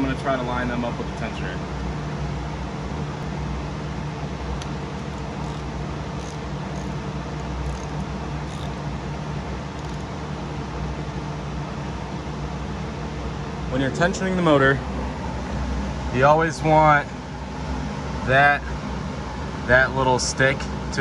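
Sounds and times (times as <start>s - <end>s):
low machine hum: 0.9s - 19.8s.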